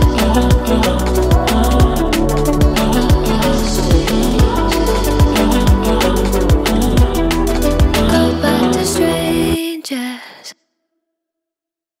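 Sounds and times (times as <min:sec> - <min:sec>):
breathy female vocal: 0:00.0 - 0:10.6.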